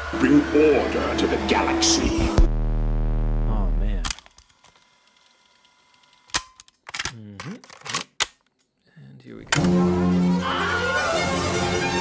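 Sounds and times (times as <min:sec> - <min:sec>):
pitch glides sweeping: 0:00.0 - 0:03.5.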